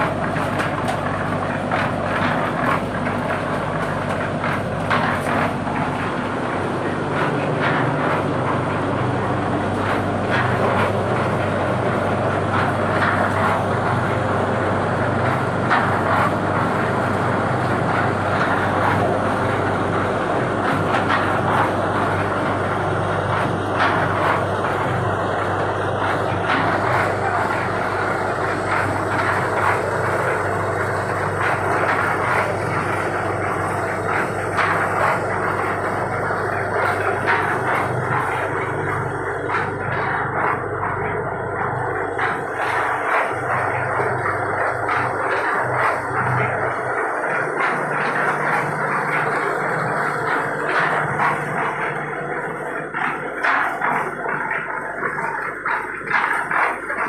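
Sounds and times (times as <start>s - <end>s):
machinery droning: 0.0s - 57.0s
plastic moulds and concrete blocks clattering: 26.1s - 57.0s.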